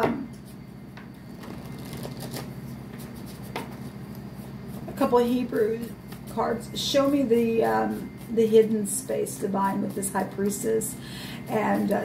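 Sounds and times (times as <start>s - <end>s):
steady low hum: 0.0s - 12.0s
cards being shuffled: 1.4s - 3.4s.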